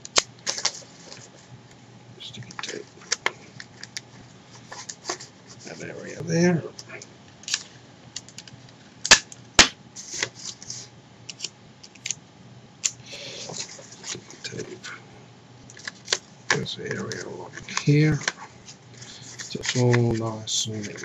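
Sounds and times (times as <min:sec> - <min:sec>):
paper and tape crinkling: 0:00.2 - 0:01.5, 0:15.7 - 0:21.0.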